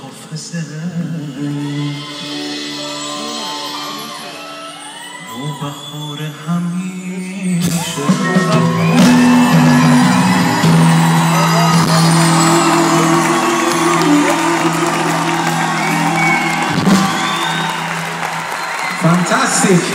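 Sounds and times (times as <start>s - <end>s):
audience cheering and clapping: 1.5s - 5.4s, 7.9s - 19.9s
pop band holding a chord: 7.6s - 19.9s.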